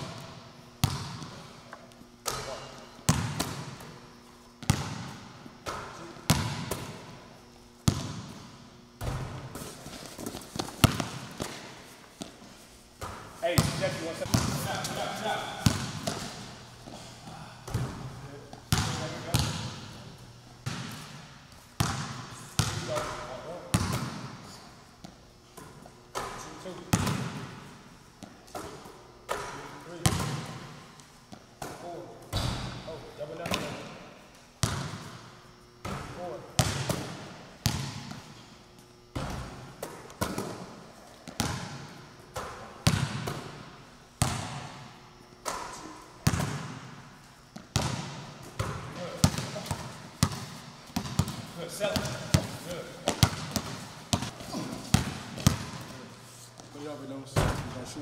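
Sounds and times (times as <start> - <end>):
basketball bouncing on gym floor: 0.0 - 4.0, 4.6 - 7.2, 7.8 - 12.4, 13.0 - 34.0, 34.6 - 38.4, 39.1 - 56.0, 57.3 - 57.8.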